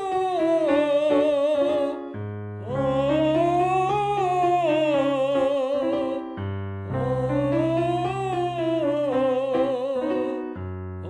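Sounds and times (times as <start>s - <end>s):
man singing falsetto scale: 0.0s - 10.6s
held piano chord: 0.0s - 11.0s.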